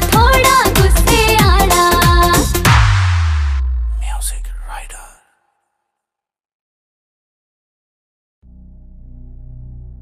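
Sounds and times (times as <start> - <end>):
low held bass note: 2.7 - 4.7, 8.4 - 10.0
person whispering: 3.9 - 5.4.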